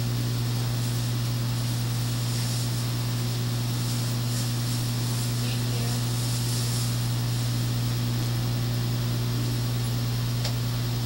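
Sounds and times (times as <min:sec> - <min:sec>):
constant hiss: 0:00.0 - 0:10.7
steady low hum: 0:00.0 - 0:11.0.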